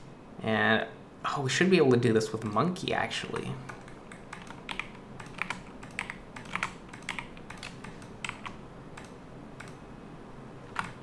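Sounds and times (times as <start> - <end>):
computer keyboard clicks: 3.7 - 9.8, 10.7 - 11.0.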